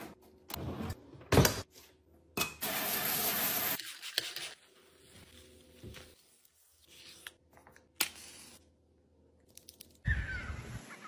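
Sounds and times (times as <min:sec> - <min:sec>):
bird calling: 0:10.1 - 0:11.0.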